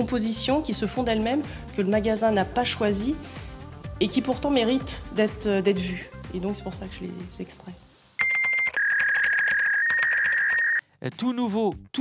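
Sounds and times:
rapid keyboard typing clicks: 8.2 - 10.6
high electronic tone: 8.2 - 10.8.

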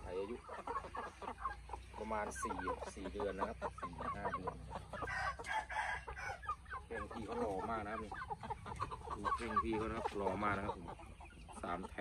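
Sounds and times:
chickens clucking: 0.0 - 12.0
rooster crowing: 5.1 - 6.4.

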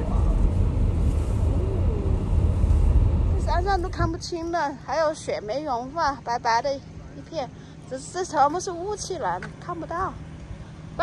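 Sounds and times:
car engine and tyres rumbling: 0.0 - 11.0
woman speaking: 3.4 - 10.2.

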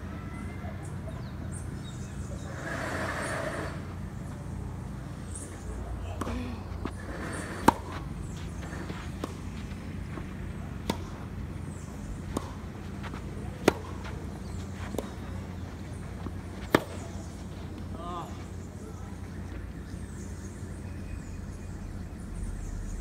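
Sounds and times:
low background rumble: 0.0 - 23.0
racket hitting tennis ball: 6.1 - 17.9.

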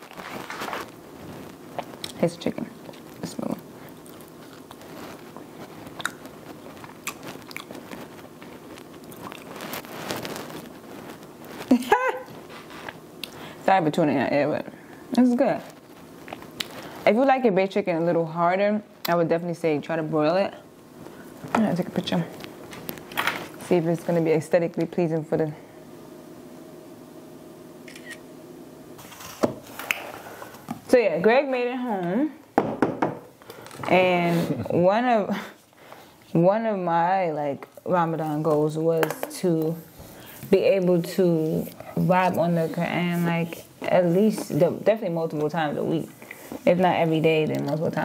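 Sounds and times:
faint steady hum: 0.0 - 48.0
person chewing crunchy chicken: 3.8 - 10.2.

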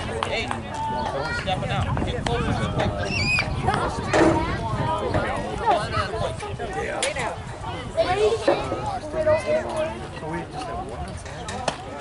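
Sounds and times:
background voices of players and spectators: 0.0 - 12.0.

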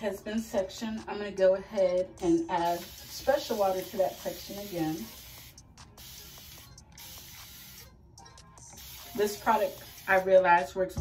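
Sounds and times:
spray bottle misting water: 2.6 - 7.9, 8.7 - 10.4.

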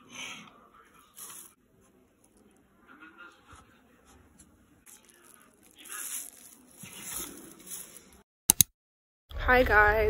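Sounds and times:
plastic wrapping crinkling: 4.8 - 8.2
sharp clicks: 8.5 - 8.7.

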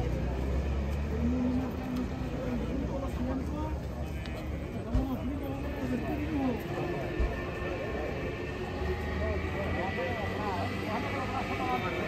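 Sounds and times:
car engine rumble: 0.0 - 12.0
people talking: 0.0 - 12.0.

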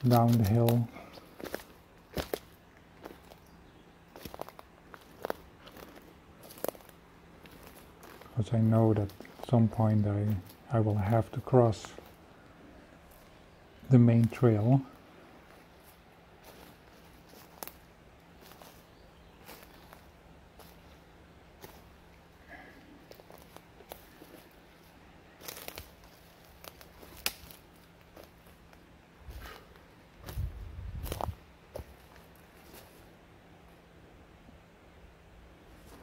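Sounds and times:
brushing through undergrowth: 0.0 - 3.4, 4.1 - 10.7, 15.4 - 22.0, 22.8 - 33.1
footsteps crunching twigs and leaves: 0.0 - 33.2, 35.7 - 36.0.

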